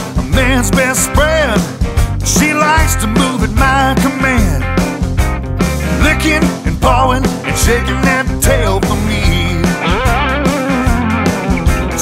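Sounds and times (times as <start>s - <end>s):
bass and drums: 0.0s - 12.0s
electric guitar bent notes: 4.6s - 12.0s.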